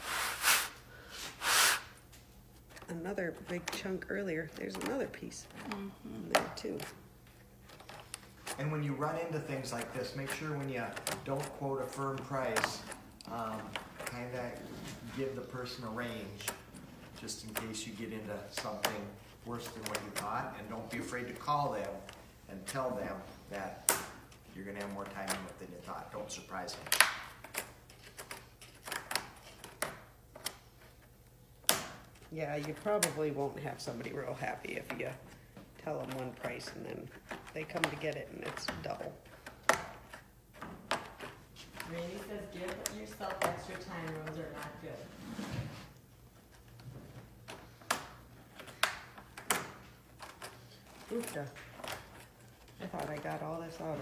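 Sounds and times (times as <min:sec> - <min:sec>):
airy breath puff: 0:00.0 - 0:02.0.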